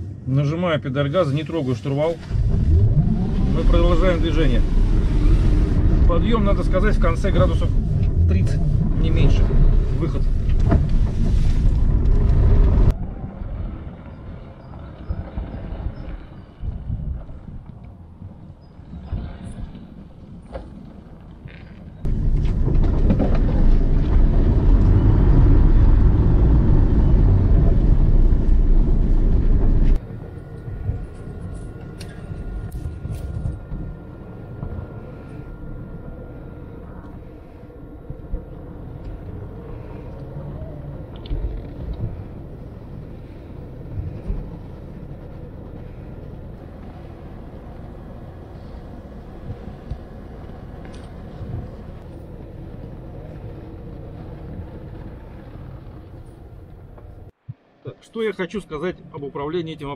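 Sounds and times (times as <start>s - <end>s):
electric vehicle driving over snow: 1.8s - 57.3s
loud low rumble in cab: 2.2s - 13.0s, 22.0s - 57.4s
faint high whine: 22.0s - 56.4s.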